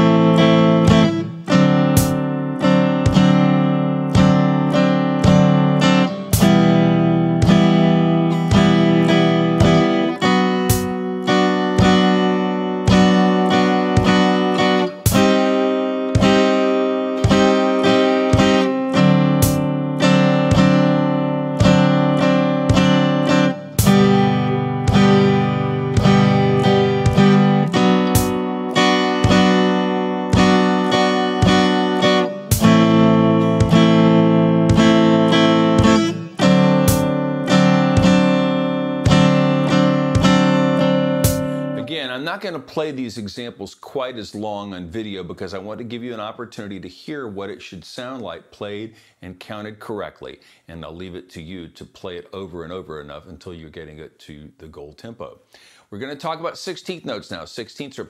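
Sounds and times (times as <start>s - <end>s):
electric guitar strumming chords: 0.0s - 42.0s.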